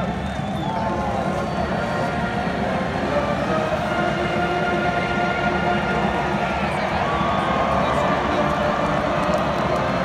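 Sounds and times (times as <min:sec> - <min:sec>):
marching band brass chords: 0:00.0 - 0:10.0
murmur of stadium crowd: 0:00.0 - 0:10.0.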